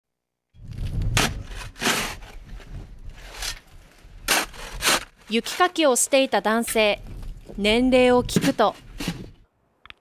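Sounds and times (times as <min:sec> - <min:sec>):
metal shovel scraping snow: 0:01.1 - 0:06.3.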